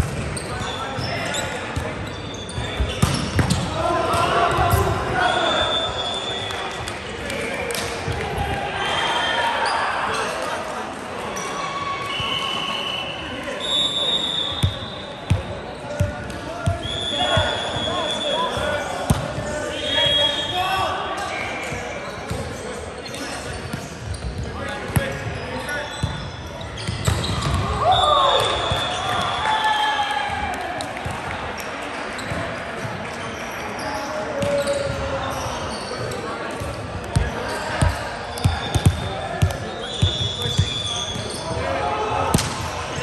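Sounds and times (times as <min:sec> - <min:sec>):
sneakers squeaking on floor: 0:00.0 - 0:07.1, 0:13.6 - 0:20.6, 0:21.2 - 0:29.4, 0:31.6 - 0:43.0.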